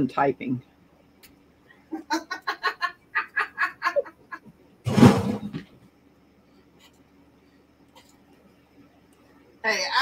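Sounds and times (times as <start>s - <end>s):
person laughing: 1.9s - 4.4s.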